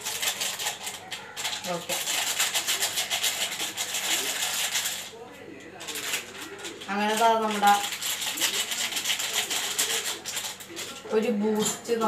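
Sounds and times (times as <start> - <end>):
plastic sachet rustling: 0.0 - 5.2, 5.8 - 11.1.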